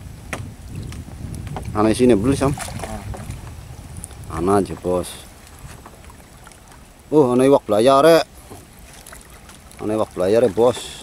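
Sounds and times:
soft splashes: 1.7 - 11.0
net dragging in water: 2.0 - 6.9.

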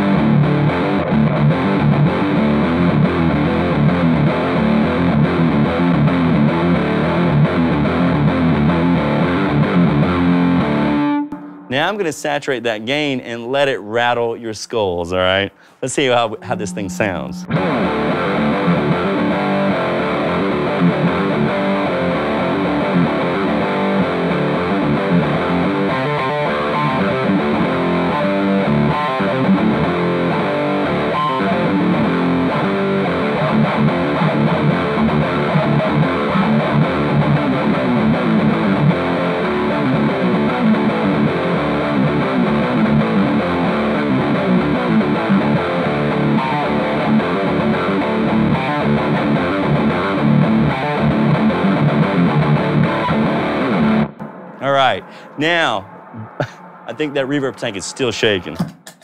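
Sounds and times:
distorted electric guitar riffing: 0.0 - 13.4, 15.3 - 59.0.

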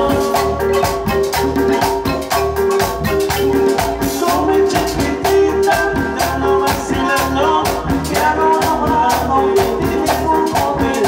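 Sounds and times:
congas: 0.0 - 11.0
drum kit: 0.0 - 11.0
electric keyboard: 0.0 - 11.0
marimba: 0.0 - 11.0.

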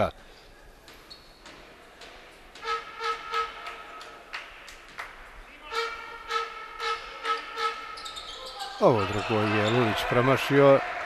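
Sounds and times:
horn blasts: 2.6 - 3.8, 5.6 - 8.0.

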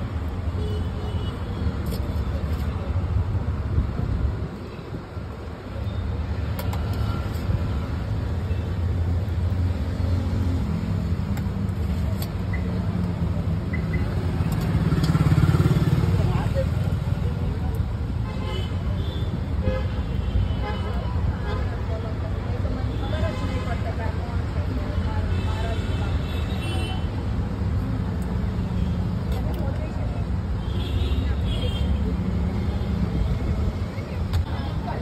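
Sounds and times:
passing vehicle engines: 9.0 - 17.7.

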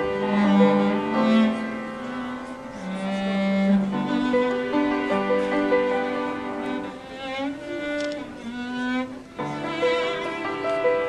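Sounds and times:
bowed cello notes: 0.0 - 11.0.

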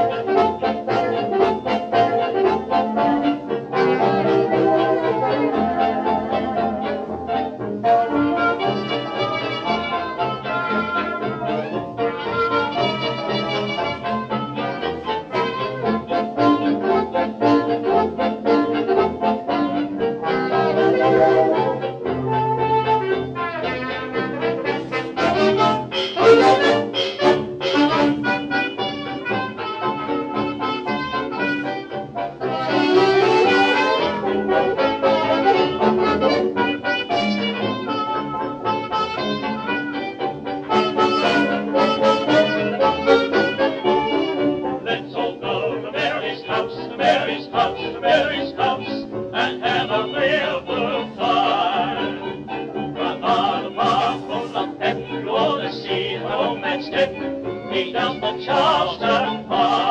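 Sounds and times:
dance band with brass: 0.0 - 59.9.

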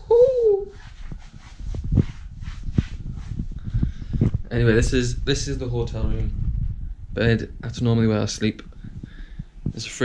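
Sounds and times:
man making playful whine: 0.0 - 0.8.

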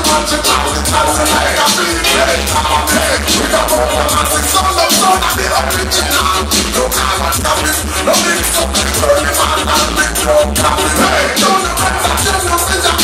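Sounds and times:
loud party music with heavy bass: 0.0 - 13.0.

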